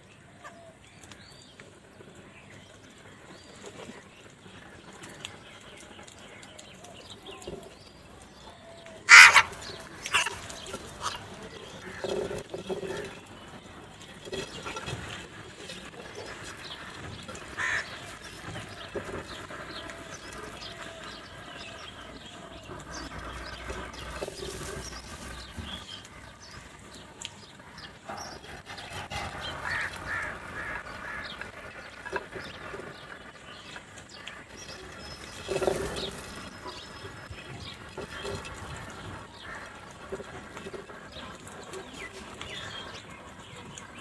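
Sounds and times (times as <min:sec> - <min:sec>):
beaks pecking grain from dish: 0:00.5 - 0:44.0
crows cawing: 0:09.1 - 0:11.2, 0:17.5 - 0:18.1, 0:29.6 - 0:31.4.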